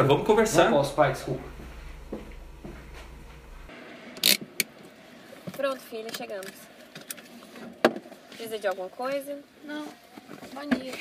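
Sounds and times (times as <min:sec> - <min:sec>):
low steady hum: 0:00.0 - 0:05.6.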